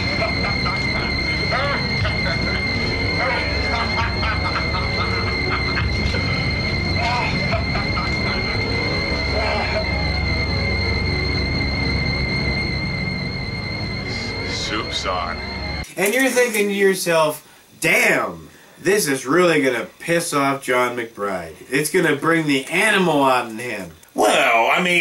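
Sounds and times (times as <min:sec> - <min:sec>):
voices: 0:00.0 - 0:12.5, 0:13.5 - 0:25.0
eerie background music: 0:00.0 - 0:15.9
high-pitched whine: 0:00.0 - 0:17.1.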